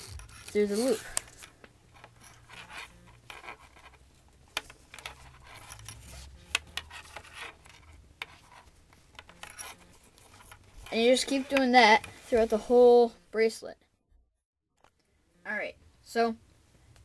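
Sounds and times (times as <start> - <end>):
small clicks and scratches: 0.0 - 12.4
cord rubbing and sliding: 0.0 - 12.9.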